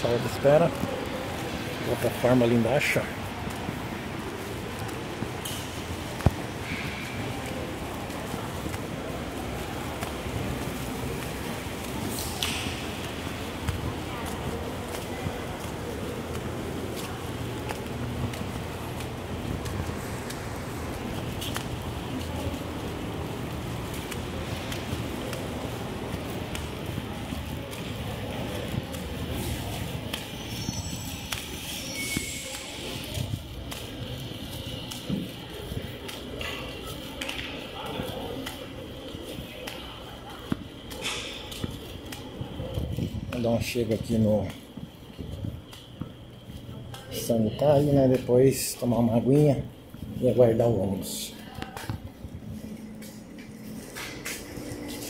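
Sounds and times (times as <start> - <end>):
indistinct distant voices: 0.0 - 55.0
reverberant room noise: 0.0 - 55.0.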